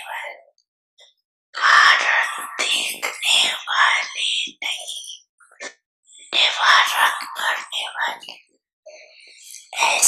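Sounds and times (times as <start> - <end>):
woman talking into a microphone: 1.9 - 5.1.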